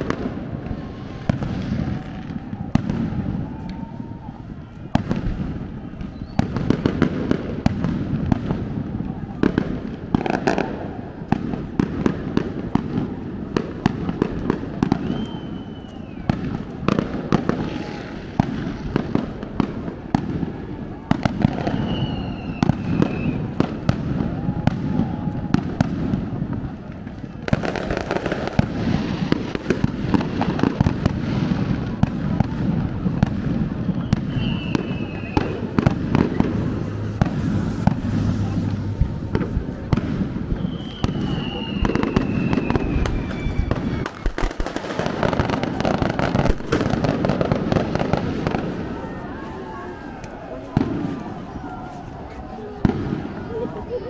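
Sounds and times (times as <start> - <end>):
fireworks bangs and crackles: 0.0 - 54.0
people talking: 8.8 - 11.3, 31.5 - 43.3, 45.2 - 54.0.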